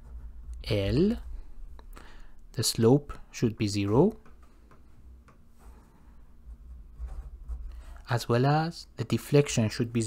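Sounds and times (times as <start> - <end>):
marker pen scratching on paper: 0.0 - 0.9, 5.5 - 8.1.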